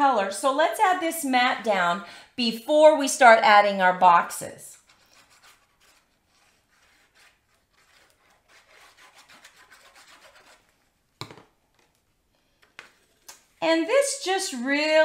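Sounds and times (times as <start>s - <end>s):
glue nozzle scratching on cardstock: 4.8s - 10.7s
paper tapped down on card: 11.2s - 11.9s.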